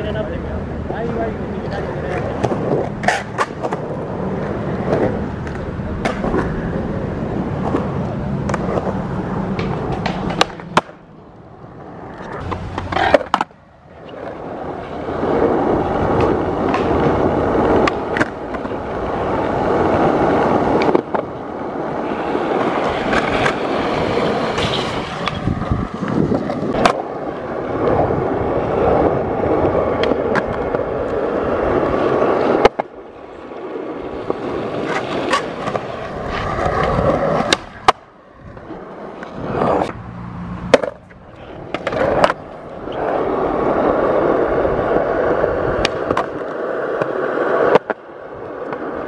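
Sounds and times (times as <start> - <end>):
skateboard wheels rolling: 0.0 - 49.0
skateboard knocks: 7.6 - 11.0.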